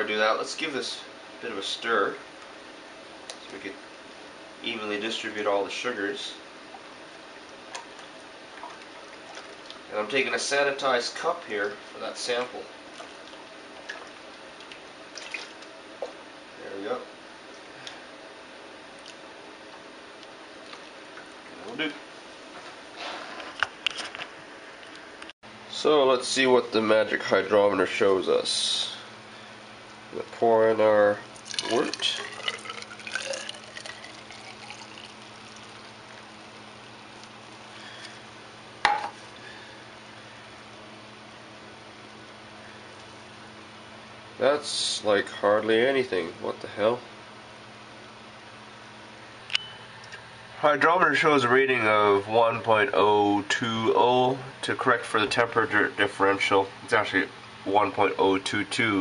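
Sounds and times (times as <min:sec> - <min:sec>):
liquid dripping and splashing: 0:06.7 - 0:09.9, 0:12.9 - 0:15.7, 0:31.4 - 0:36.3.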